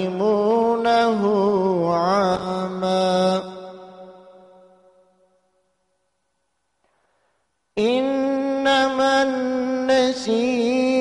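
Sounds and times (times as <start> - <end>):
man chanting melodically: 0.0 - 5.0, 7.8 - 11.0.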